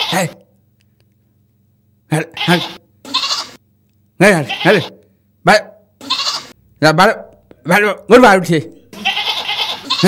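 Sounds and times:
goat bleating: 0.0 - 0.4, 2.2 - 3.6, 4.3 - 5.0, 6.0 - 6.6, 8.9 - 10.0.

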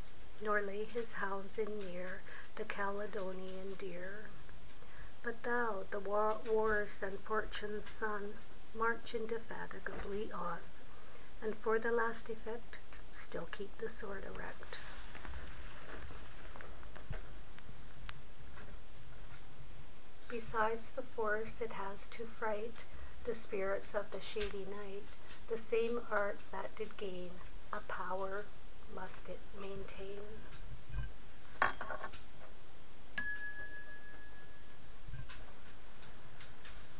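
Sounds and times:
bell-like chime ding: 33.2 - 34.6.

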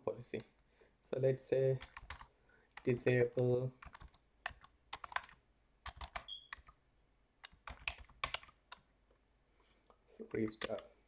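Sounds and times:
keyboard typing clicks: 1.8 - 2.9, 3.8 - 6.8, 7.4 - 8.8, 10.4 - 10.8.

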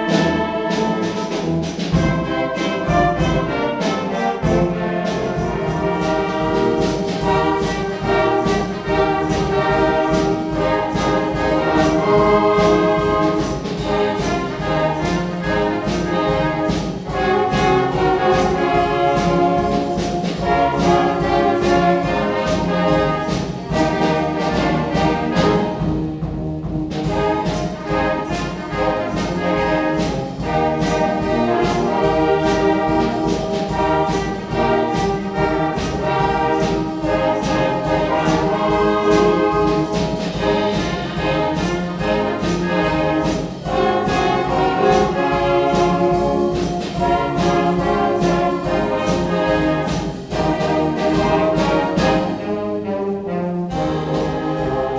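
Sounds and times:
percussion beat: 0.0 - 52.4
wind band playing: 0.0 - 54.9.

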